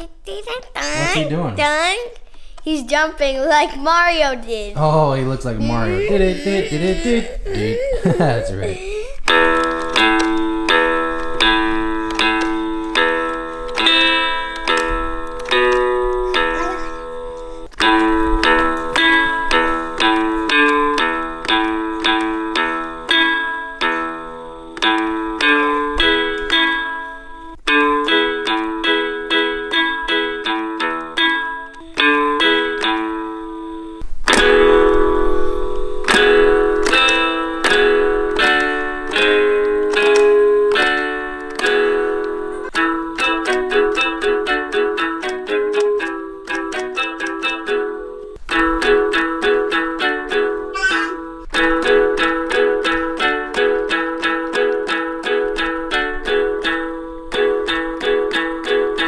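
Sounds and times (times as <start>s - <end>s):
toy guitar notes through speaker: 3.9s - 33.5s, 34.3s - 59.0s.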